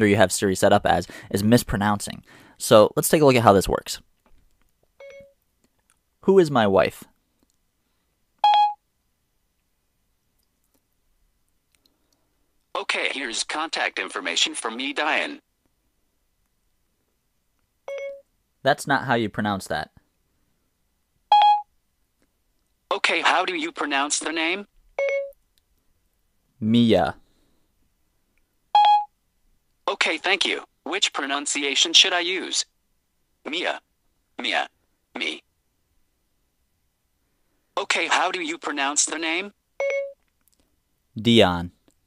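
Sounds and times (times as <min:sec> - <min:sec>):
synthesized voice speaking: 0:12.8 - 0:15.4, 0:22.9 - 0:24.7, 0:34.4 - 0:35.4, 0:37.8 - 0:39.5.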